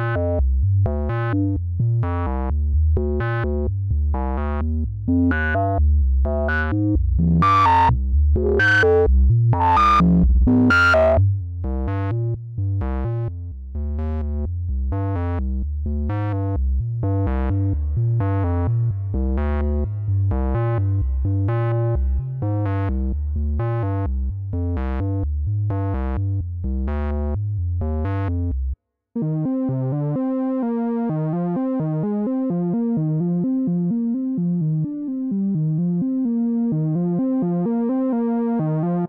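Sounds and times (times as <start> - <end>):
heavy synth bass: 0.0 - 30.3
pitched synth notes: 5.1 - 11.2.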